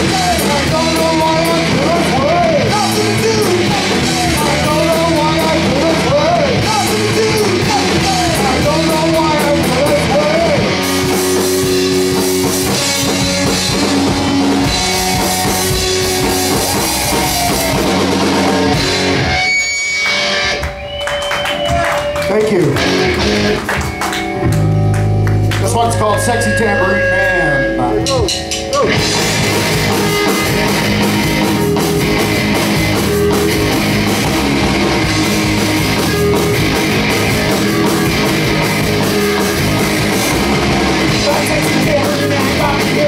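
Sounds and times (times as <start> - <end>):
drum kit: 0.0 - 43.0
electric bass: 0.0 - 43.0
electric guitars: 0.0 - 43.0
punk rock band playing: 0.0 - 43.0
thin high ringing tone: 25.8 - 28.9.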